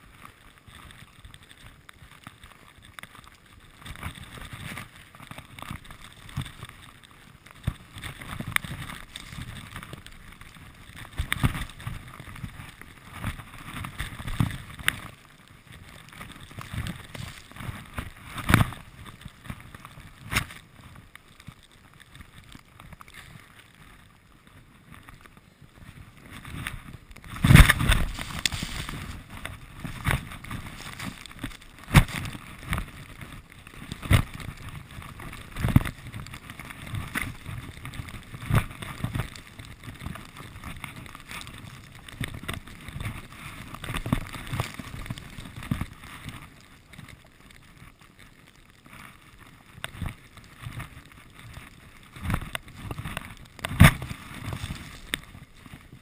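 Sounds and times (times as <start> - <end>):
skis rushing through powder snow: 0.0 - 56.0
ski turn thumps: 3.8 - 21.0, 24.9 - 47.1, 49.8 - 56.0
wind on microphone: 25.8 - 45.9.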